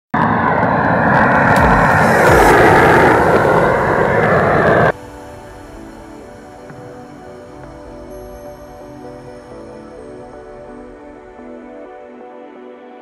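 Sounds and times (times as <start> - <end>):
background music: 1.5 - 13.0.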